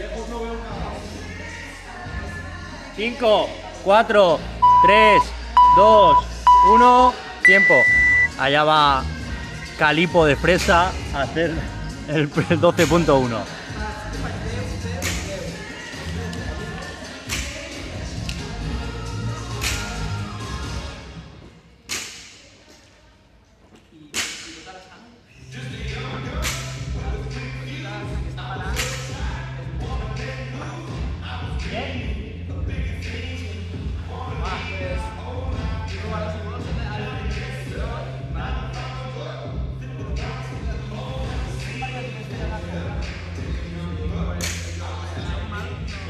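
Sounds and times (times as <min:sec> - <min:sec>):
background music with bass line: 0:00.0 - 0:21.2, 0:25.5 - 0:46.0.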